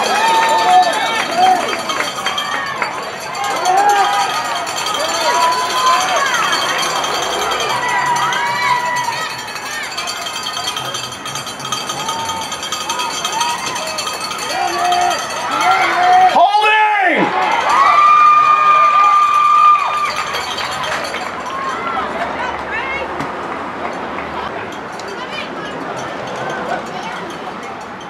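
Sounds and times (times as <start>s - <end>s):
spectators shouting and cheering: 0.0s - 28.0s.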